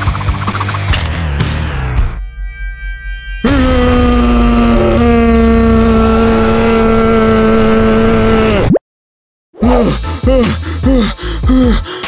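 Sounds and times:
cartoon boy screaming: 3.5s - 8.8s
short gasping breaths: 9.9s - 12.0s.

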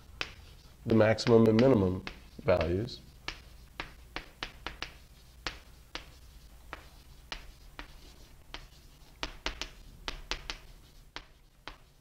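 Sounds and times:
writing tool tapping on a board: 1.1s - 7.9s.

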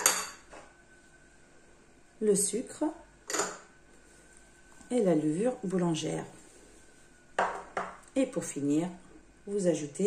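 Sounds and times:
ceramic dish clinking against bowl: 0.0s - 0.4s.

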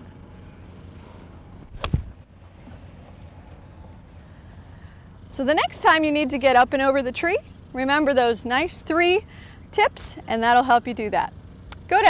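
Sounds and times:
club thudding on ground: 1.6s - 2.2s
golf club striking ball: 1.6s - 2.2s.

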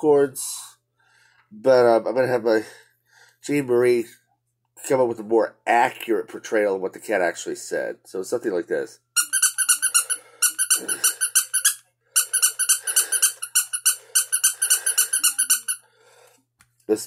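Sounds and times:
toy squeaky chattering: 9.2s - 15.8s.

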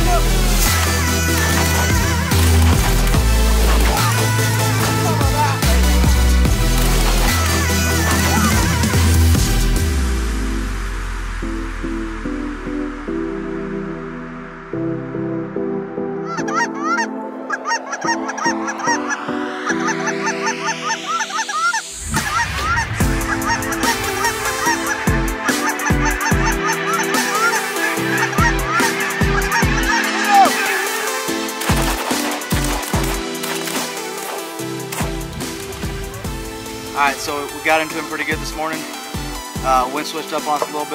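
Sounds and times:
geese honking: 0.0s - 9.9s, 16.1s - 39.5s.

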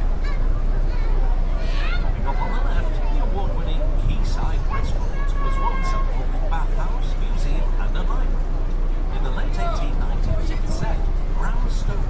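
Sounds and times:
bus engine: 0.0s - 12.0s
people's voices: 0.0s - 12.0s
wind on microphone: 10.0s - 12.0s.

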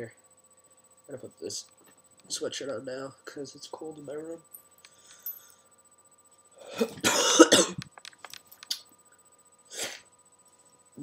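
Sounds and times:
man coughing: 6.6s - 7.8s.

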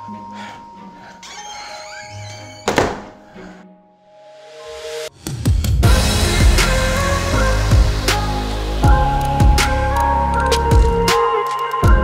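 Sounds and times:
background music with held tones: 0.0s - 12.0s
front door shutting: 1.2s - 3.6s.

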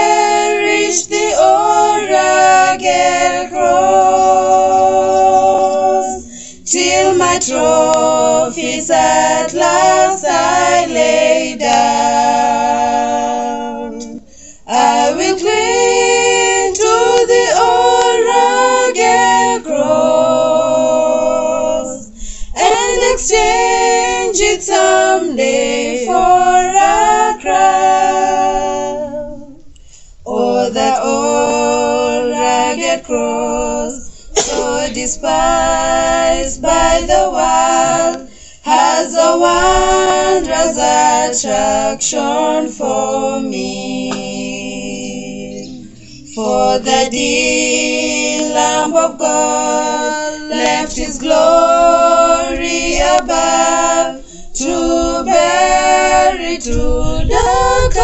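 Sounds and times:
women singing a hymn unaccompanied: 0.0s - 58.0s.

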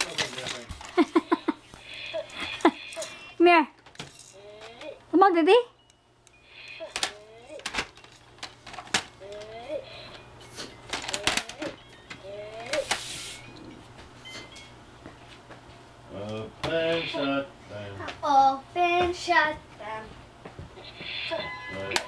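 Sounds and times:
plastic toys clattering: 0.0s - 1.2s, 3.8s - 5.0s, 6.8s - 10.2s, 10.8s - 13.0s
child vocal sounds: 9.2s - 10.1s, 11.2s - 12.9s.

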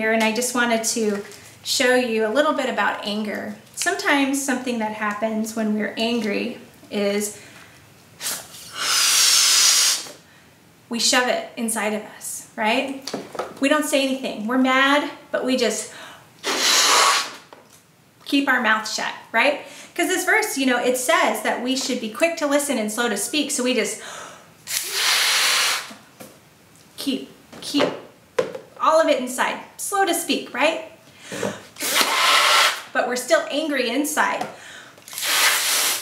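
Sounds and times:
breath blown into balloon: 8.2s - 10.2s, 16.4s - 17.4s, 24.7s - 26.0s, 31.4s - 32.9s, 35.1s - 36.0s.

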